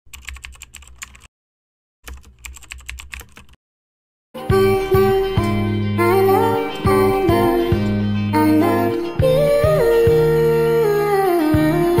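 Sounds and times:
computer keyboard typing: 0:00.1 - 0:01.3, 0:02.1 - 0:03.6.

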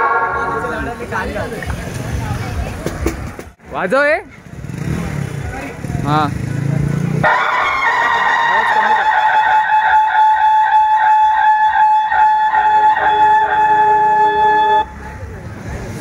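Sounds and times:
loudspeakers blaring electronic tone: 0:00.0 - 0:00.9, 0:08.5 - 0:14.9.

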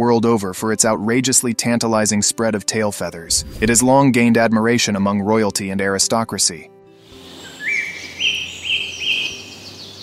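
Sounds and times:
songbird whistled notes: 0:07.2 - 0:10.0
high bird twittering: 0:07.3 - 0:10.0.

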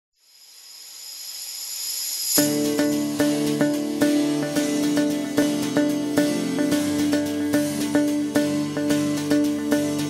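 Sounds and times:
rising hiss riser effect: 0:00.2 - 0:04.2
steady high tones: 0:00.2 - 0:10.0
opening music: 0:02.4 - 0:10.0.

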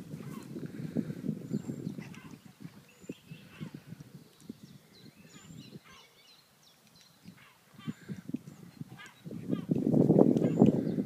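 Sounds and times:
small birds chirping: 0:00.2 - 0:11.0.

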